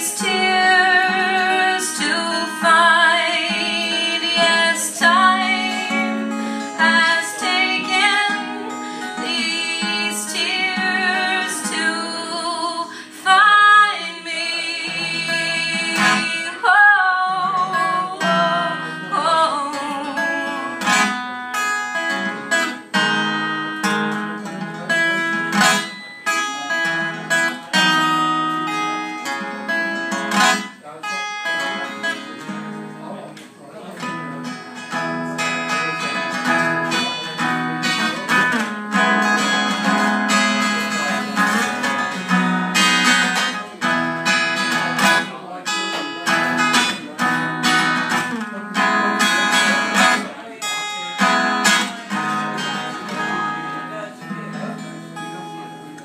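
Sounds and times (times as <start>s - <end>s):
acoustic guitar strumming chords: 0.0s - 56.0s.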